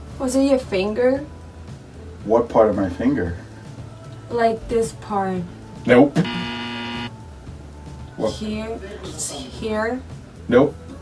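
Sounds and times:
wrong-answer buzzer: 6.2s - 7.1s.

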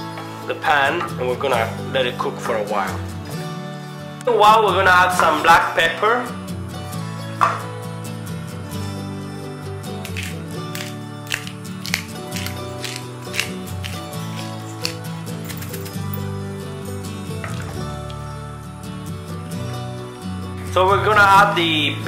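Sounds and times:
background music with held notes: 0.0s - 22.0s
pepper mill grinding: 9.9s - 16.3s.

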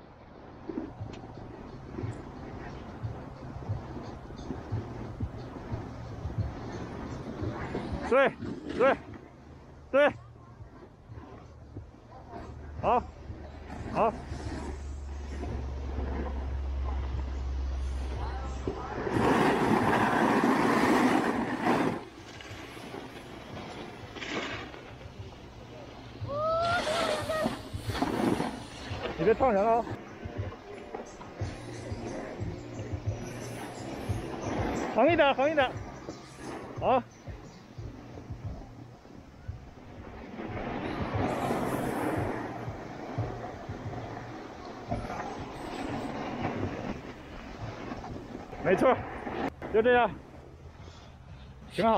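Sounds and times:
wind rumble on microphone: 0.0s - 51.9s
snowboard scraping over snow: 0.4s - 51.9s.

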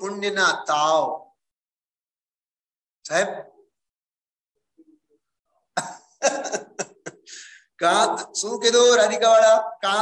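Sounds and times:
man coughing: 5.8s - 7.3s.

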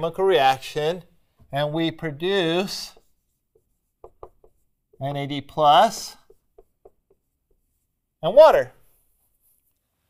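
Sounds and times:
marker squeaking on whiteboard: 2.5s - 7.9s.

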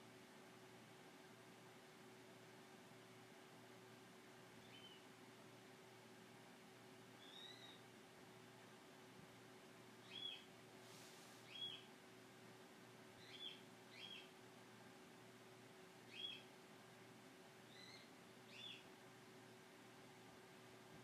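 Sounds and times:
low steady hum: 0.0s - 21.0s
small bird chirping: 4.6s - 5.1s, 7.2s - 7.8s, 10.0s - 10.5s, 11.4s - 11.9s, 13.2s - 14.4s, 16.0s - 16.5s, 17.6s - 18.9s.

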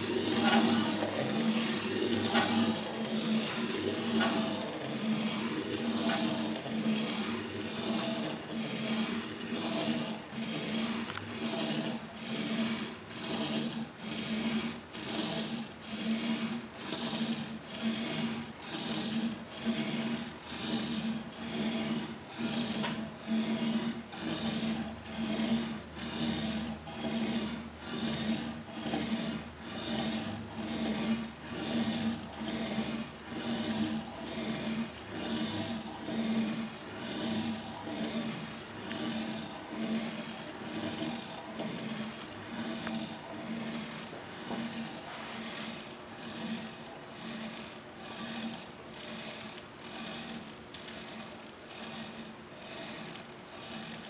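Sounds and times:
pen scratching on paper: 0.0s - 15.6s
steady low hum: 0.0s - 54.0s.

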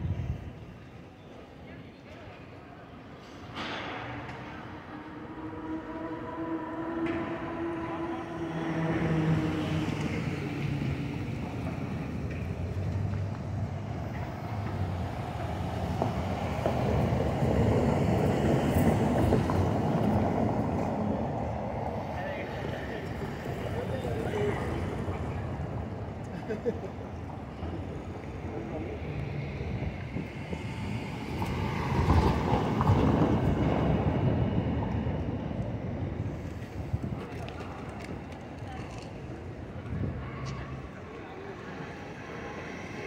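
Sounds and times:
voices of passersby: 0.0s - 43.0s
passing traffic rumble: 2.6s - 43.0s
vehicle engine humming: 4.1s - 21.6s.

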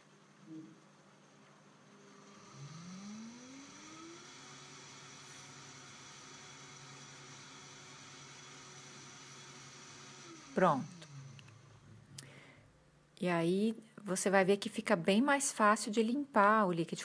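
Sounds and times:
blender motor humming: 1.4s - 12.4s.

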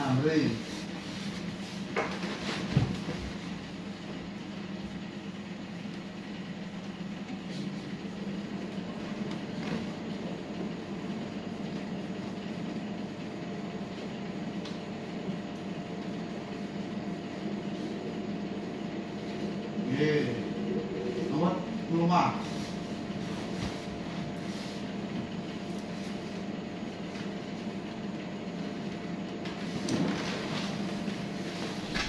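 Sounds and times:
low room hum: 0.0s - 32.0s.

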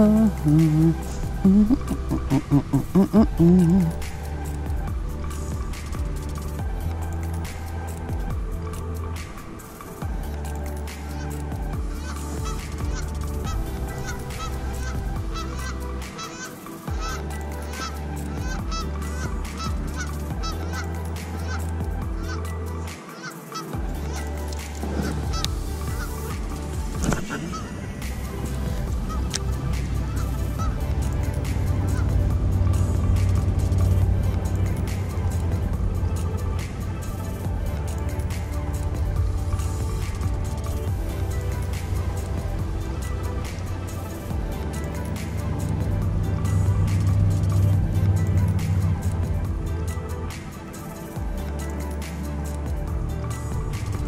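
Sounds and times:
background music with bass line: 0.0s - 54.0s
geese honking: 11.1s - 22.5s, 23.1s - 26.4s, 28.9s - 32.2s.

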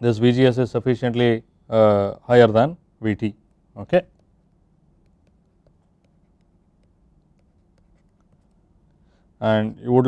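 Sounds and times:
low steady hum: 0.0s - 10.0s
stylus writing on tablet screen: 3.5s - 8.8s.

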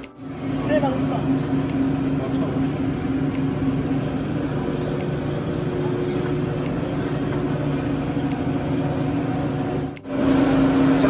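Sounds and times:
steady room hum: 0.0s - 11.0s.

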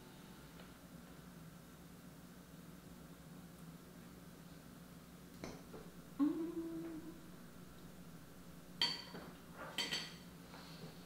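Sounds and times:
metal fork clinking on plate: 9.8s - 10.2s.

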